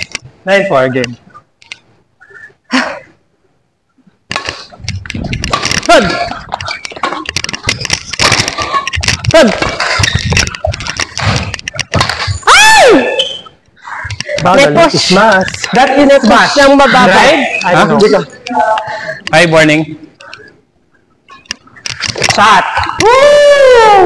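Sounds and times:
racquets striking shuttlecock: 4.3 - 12.4
loud falling squeak: 12.3 - 13.6
shoes squeaking on court floor: 13.0 - 13.6.

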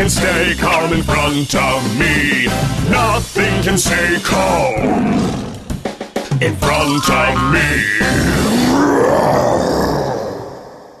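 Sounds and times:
deep rough dinosaur roar: 7.0 - 11.0.

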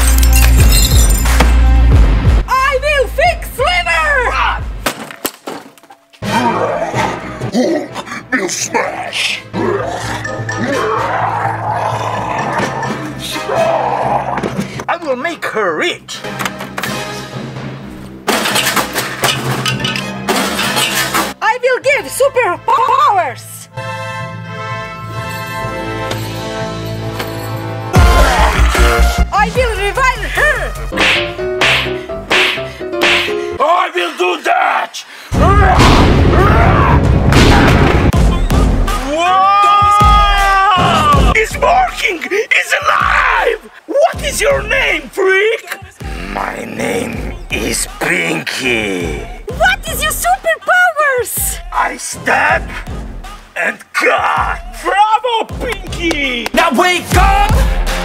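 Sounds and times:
action background music: 16.1 - 33.6, 35.4 - 39.2, 54.4 - 58.0
person yelling: 35.4 - 37.0, 38.8 - 45.0, 54.0 - 56.4
person shouting: 38.8 - 42.0, 42.6 - 43.7.

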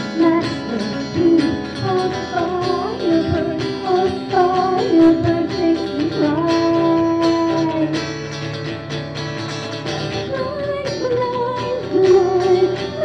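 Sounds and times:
woman singing a rock song: 0.0 - 8.3, 10.1 - 13.0
guitar accompaniment: 0.0 - 13.0.

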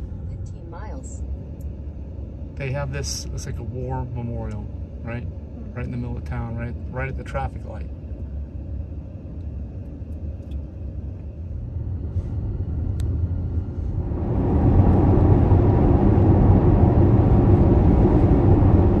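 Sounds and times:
road and tyre noise inside car: 0.0 - 19.0.

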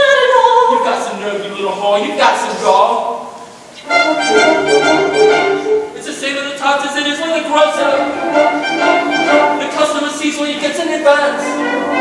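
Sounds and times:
orchestral music with brass: 3.8 - 6.0, 7.6 - 10.1, 10.7 - 12.0.

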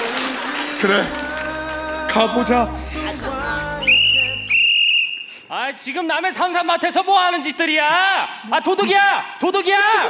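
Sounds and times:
background music: 0.0 - 4.9
whistle blasts: 3.8 - 5.5.

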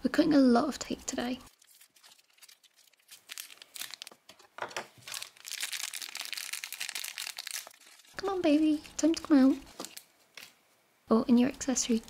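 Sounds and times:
plastic bag crinkling: 1.4 - 10.1.

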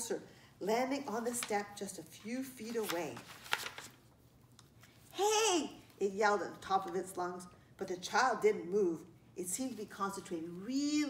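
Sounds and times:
paper rustling: 1.3 - 4.2
sharp paper crackle: 2.6 - 4.1.

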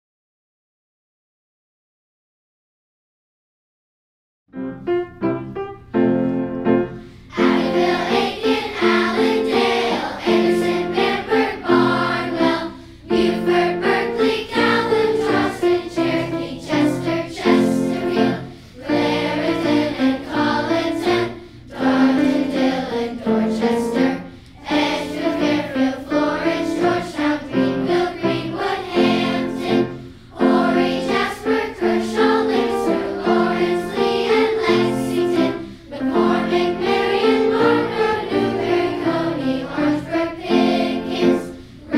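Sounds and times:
children's choir singing: 6.6 - 41.9.

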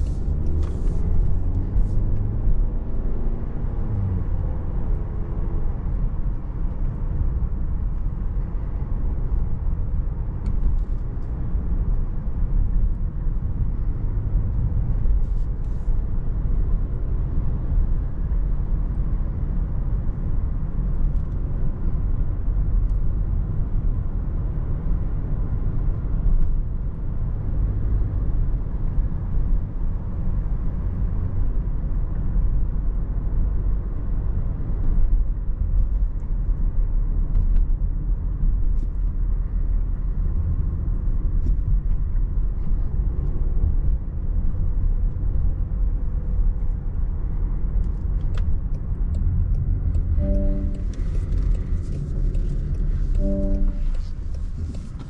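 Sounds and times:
car engine rumble: 0.0 - 55.0
road noise: 0.0 - 55.0.

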